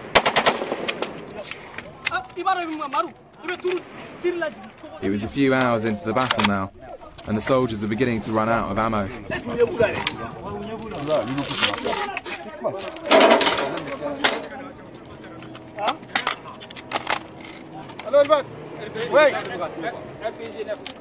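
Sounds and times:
sharp cracks: 0.0s - 7.5s
men calling out and talking: 1.0s - 21.0s.

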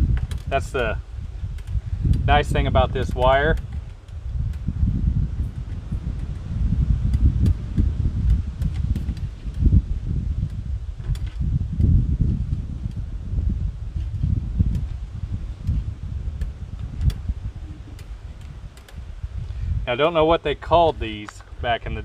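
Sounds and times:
wind buffeting microphone: 0.0s - 22.0s
faint clicks of wire and pliers: 1.5s - 2.3s, 17.9s - 19.6s.

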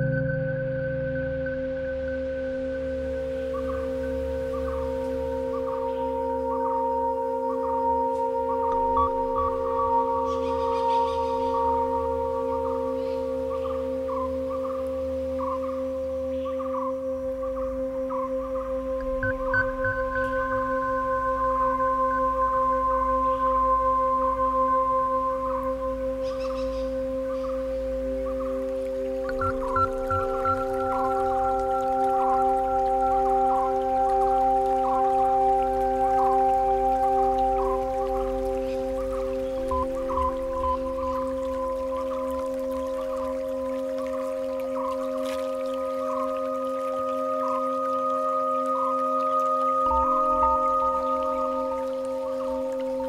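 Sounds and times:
binaural drone of pure tones: 0.0s - 53.0s
faint warbling notes: 0.0s - 53.0s
low hum: 0.0s - 53.0s
soft low thumps: 19.0s - 21.8s.

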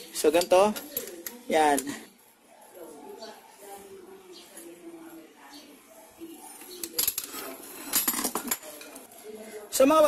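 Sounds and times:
metal tools clinking: 6.6s - 9.1s.

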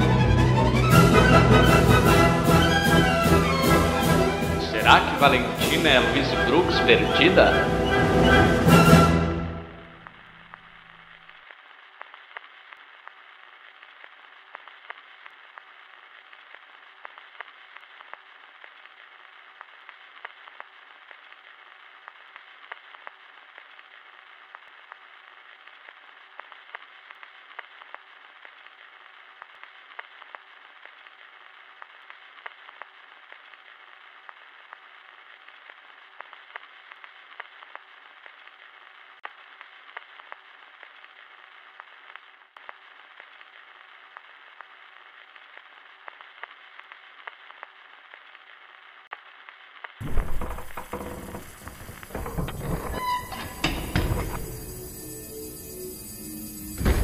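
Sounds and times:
faint hiss with crackles and pops: 0.0s - 57.0s.

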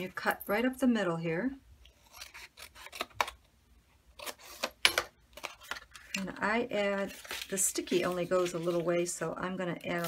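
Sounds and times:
paper rustling: 6.9s - 9.1s.

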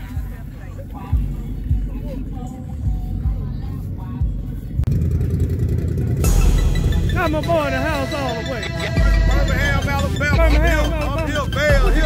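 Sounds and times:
faint voices: 0.0s - 12.0s
off-road vehicle engines idling: 0.0s - 12.0s
outdoor rumble: 0.0s - 12.0s.

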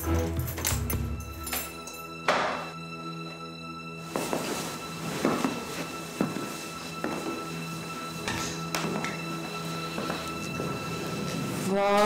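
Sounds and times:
music of long held notes: 0.0s - 12.0s.

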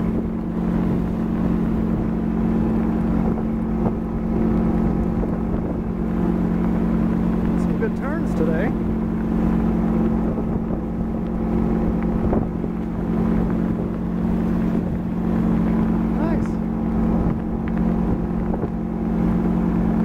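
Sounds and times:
boat motor droning: 0.0s - 20.0s
wake water rushing: 0.0s - 20.0s.

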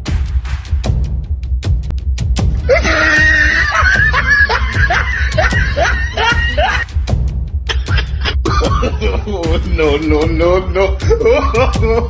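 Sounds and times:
background music with bass beat: 0.0s - 12.0s
person shrieking: 2.6s - 6.9s, 7.7s - 9.0s.

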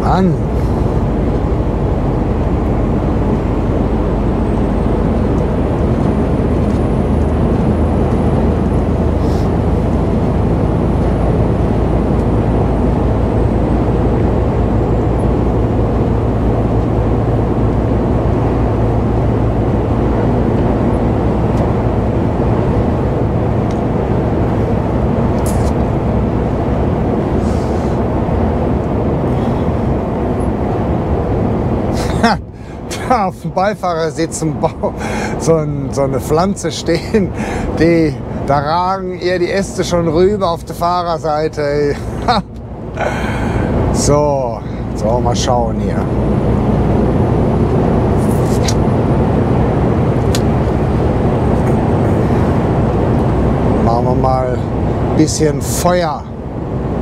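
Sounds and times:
truck diesel engine drone: 0.0s - 57.0s
tyre and road noise: 0.0s - 57.0s.

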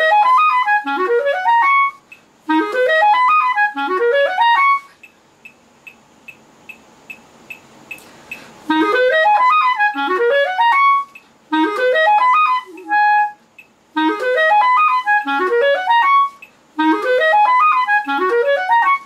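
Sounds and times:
clarinet practice runs: 0.0s - 5.0s, 8.7s - 13.4s, 14.0s - 19.0s
metronome clicks: 2.0s - 4.0s, 5.0s - 8.5s, 9.4s - 18.8s.

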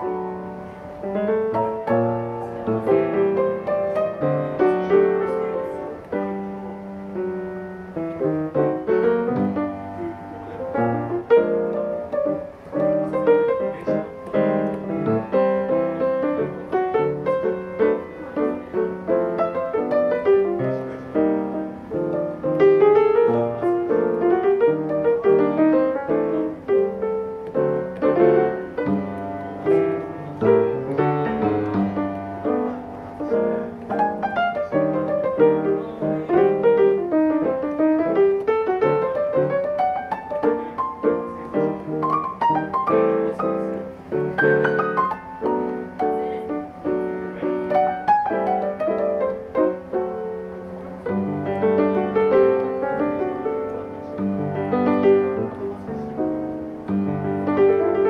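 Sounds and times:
solo jazz piano: 0.0s - 58.0s.

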